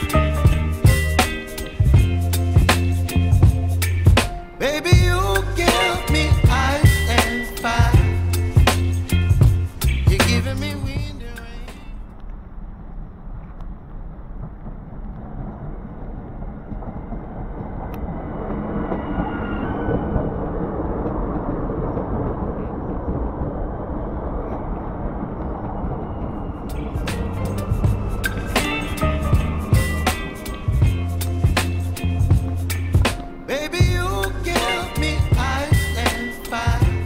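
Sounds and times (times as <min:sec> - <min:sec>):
background music: 0:00.0 - 0:12.0, 0:26.7 - 0:37.0
electric train rumbling: 0:00.0 - 0:37.0
high wheel whine: 0:24.4 - 0:36.5.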